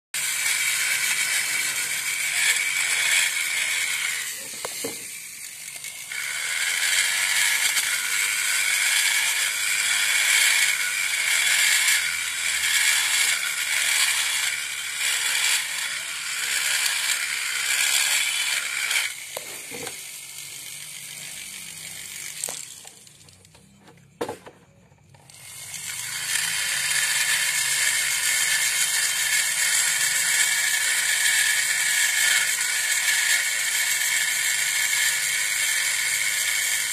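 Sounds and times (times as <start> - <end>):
die grinder whining: 0.2 - 36.9.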